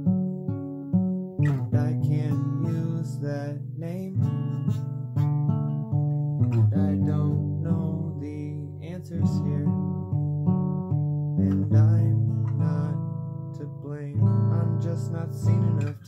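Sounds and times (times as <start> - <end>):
acoustic guitar strummed: 0.0 - 16.0.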